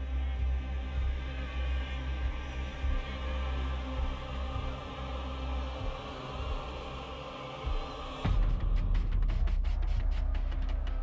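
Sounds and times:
deep bass drone: 0.0 - 11.0.

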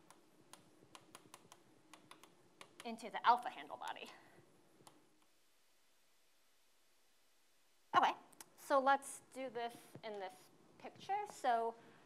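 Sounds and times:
chalk ticking on a blackboard: 0.0 - 2.9.

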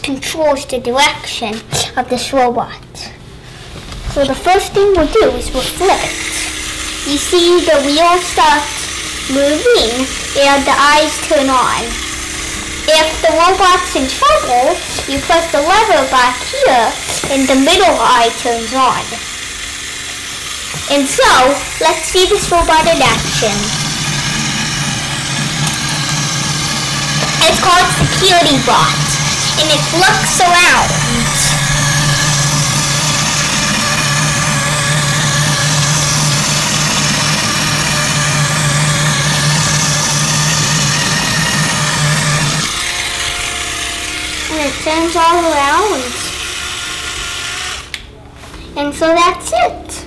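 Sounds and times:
small electric motor running: 4.1 - 48.1.

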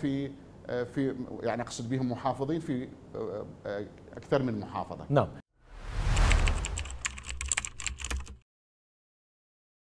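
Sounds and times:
whoosh over low rumble: 5.6 - 7.4
keyboard typing clicks: 6.1 - 8.4.

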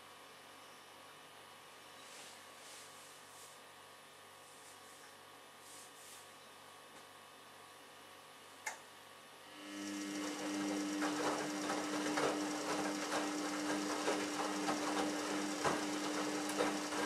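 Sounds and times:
washing machine motor hum: 9.6 - 17.0.

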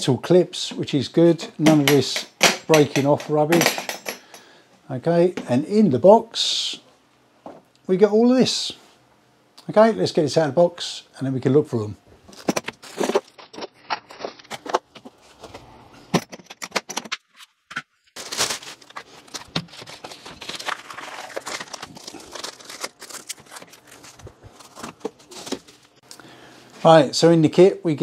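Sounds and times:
plastic bags crinkling: 18.2 - 26.0.

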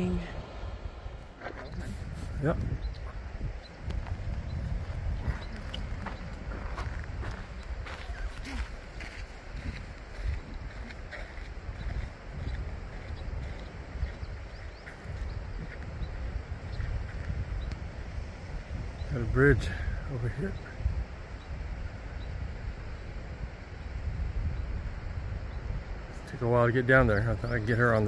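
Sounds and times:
wind rumble on microphone: 0.0 - 28.0
footsteps crunching on sandy trail: 1.3 - 18.2.

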